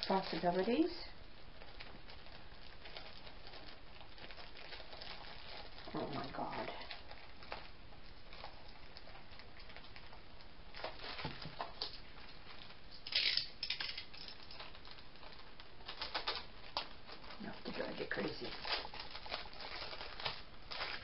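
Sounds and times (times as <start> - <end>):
plastic packaging rustling: 0.0 - 21.0.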